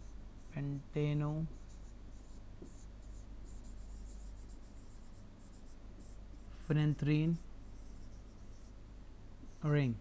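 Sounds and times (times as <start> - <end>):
stylus scratching on a tablet: 0.0 - 8.8, 9.4 - 10.0
low electrical hum: 0.0 - 10.0.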